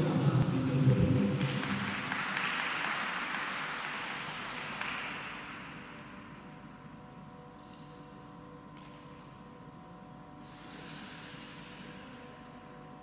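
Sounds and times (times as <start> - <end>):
audience applauding: 1.0 - 5.6.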